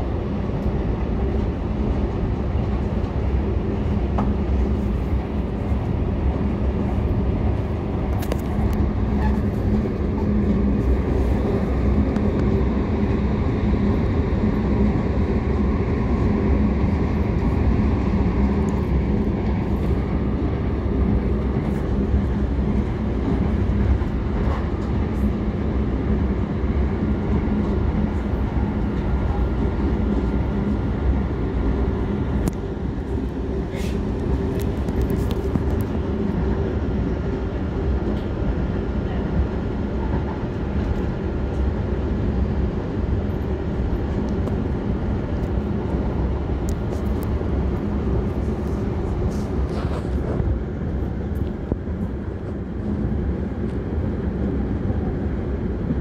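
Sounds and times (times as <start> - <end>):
moving vehicle rumble and hum: 0.0 - 56.0.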